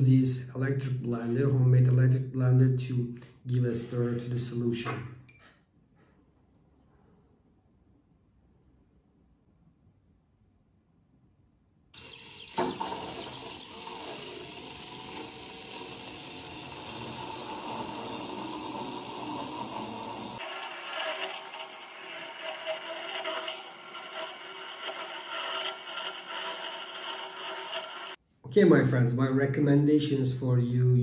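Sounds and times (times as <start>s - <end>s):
small electric blender whining: 12.0s - 28.2s.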